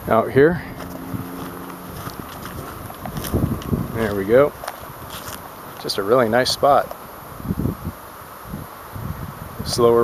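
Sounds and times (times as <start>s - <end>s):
low bumps and rustles: 0.6s - 5.5s.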